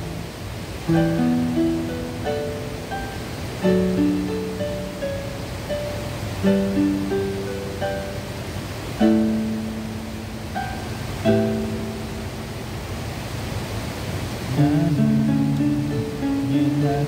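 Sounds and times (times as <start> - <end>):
water rushing over weir: 0.0 - 17.0
electronic keyboard chords: 0.8 - 12.8, 14.6 - 17.0.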